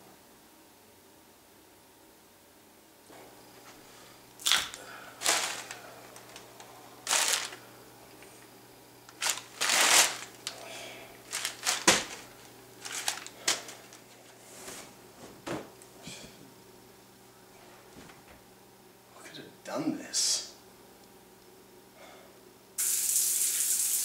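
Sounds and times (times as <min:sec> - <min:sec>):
newspaper crinkling and rustling: 0:04.4 - 0:07.6, 0:09.1 - 0:10.6, 0:11.2 - 0:14.4.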